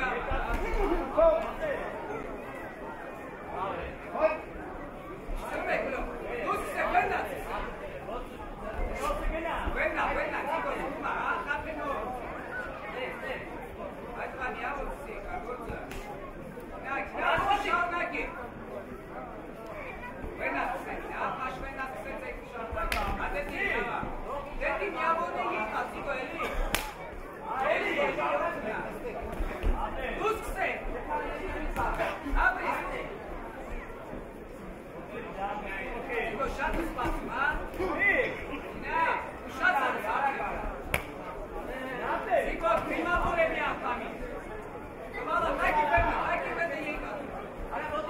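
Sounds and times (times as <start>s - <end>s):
crowd chatter and calling out: 0.0s - 48.0s
people's voices in a hall: 0.0s - 48.0s
sharp smack of a strike: 26.6s - 27.0s.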